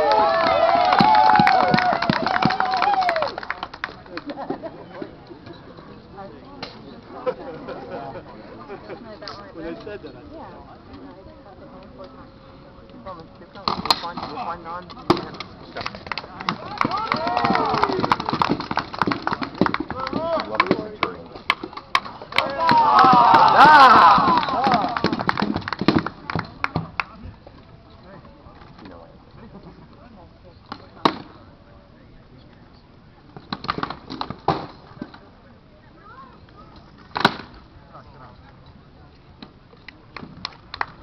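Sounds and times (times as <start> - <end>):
people shouting: 16.6 - 18.1, 22.4 - 25.1.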